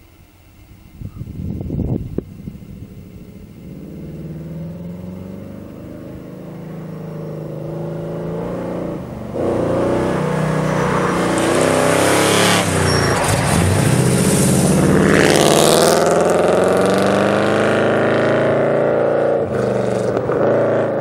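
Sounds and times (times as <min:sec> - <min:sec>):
car engine revving: 0:02.2 - 0:21.0.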